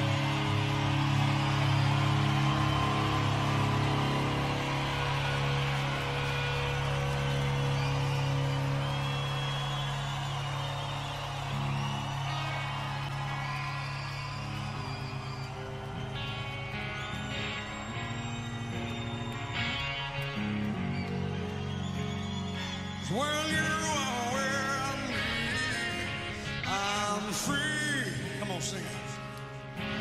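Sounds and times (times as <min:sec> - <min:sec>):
instrumental rock music: 0:00.0 - 0:30.0.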